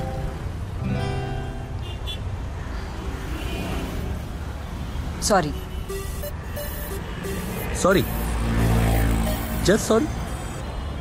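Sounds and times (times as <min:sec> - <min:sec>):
background music: 0:05.9 - 0:10.6
vehicle engine passing by: 0:07.7 - 0:10.3.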